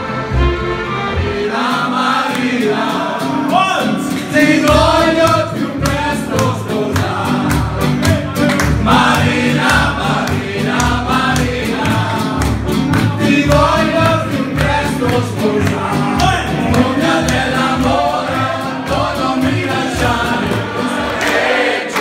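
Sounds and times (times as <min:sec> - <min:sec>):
live party band music: 0:00.0 - 0:22.0
crowd of men singing loudly: 0:01.3 - 0:08.0, 0:08.7 - 0:22.0.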